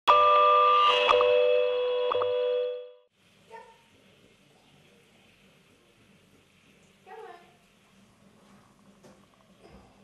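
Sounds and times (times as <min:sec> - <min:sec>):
electronic chime chord: 0:00.1 - 0:03.1.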